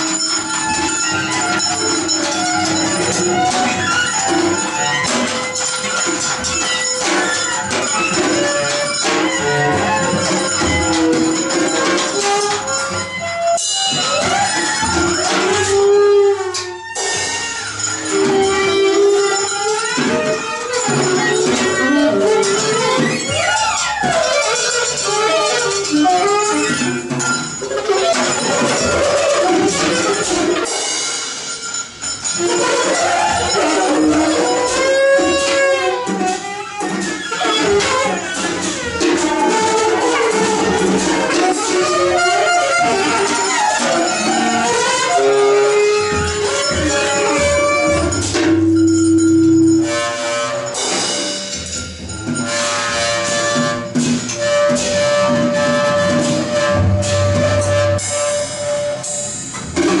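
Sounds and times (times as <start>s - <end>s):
saxophone: 0.0s - 30.8s, 31.7s - 60.0s
cymbal and drum strokes: 0.0s - 60.0s.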